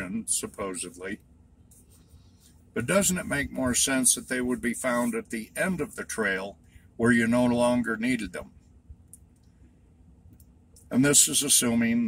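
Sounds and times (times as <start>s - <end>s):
man talking: 0.0s - 1.2s, 2.7s - 8.5s, 10.8s - 12.0s.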